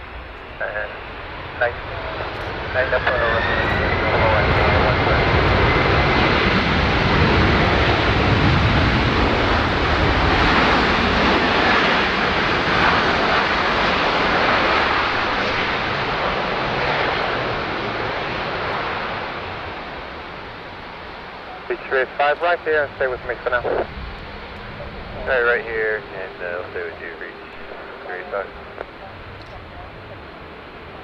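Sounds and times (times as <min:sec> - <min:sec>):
high engine whine: 0:00.0 - 0:31.0
jet engines roaring: 0:00.0 - 0:31.0.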